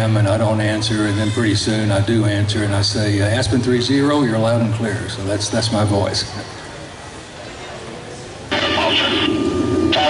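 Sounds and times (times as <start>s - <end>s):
aircraft noise over loudspeakers: 0.0s - 10.0s.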